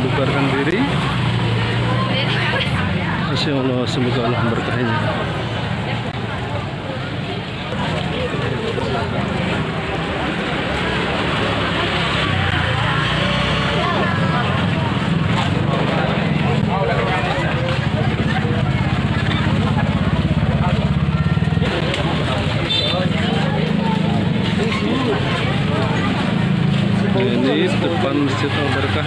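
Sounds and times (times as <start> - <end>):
crowd chatter: 0.0 - 29.0
faint background voices: 0.0 - 29.0
vehicle engine humming: 0.0 - 29.0.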